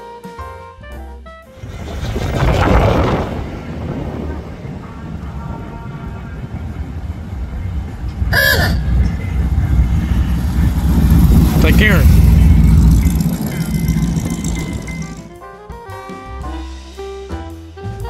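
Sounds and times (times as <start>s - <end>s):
music with saxophone: 0.0s - 1.6s, 12.4s - 18.0s
car engine rumbling past: 1.6s - 15.4s.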